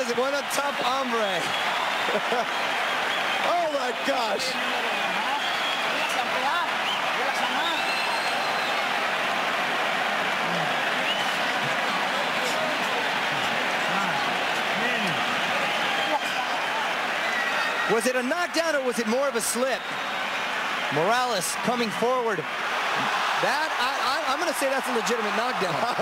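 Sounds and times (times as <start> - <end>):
crowd cheering and shouting: 0.0 - 26.0.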